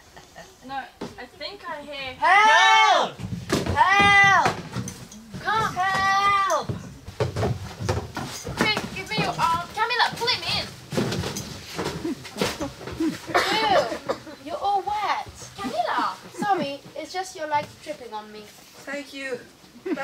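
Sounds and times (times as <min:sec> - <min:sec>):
knocks and bumps of clambering: 0:03.2 - 0:17.9.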